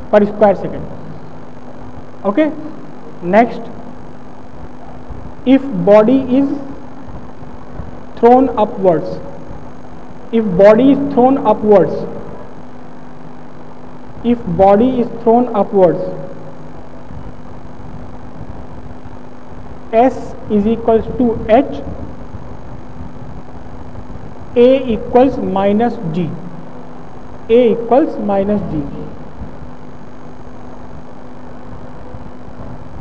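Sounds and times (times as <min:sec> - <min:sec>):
background hum and hiss: 0:00.0 - 0:33.0.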